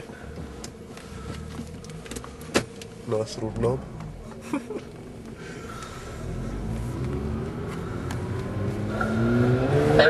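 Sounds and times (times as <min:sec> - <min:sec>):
car engine idling: 0:00.0 - 0:09.3.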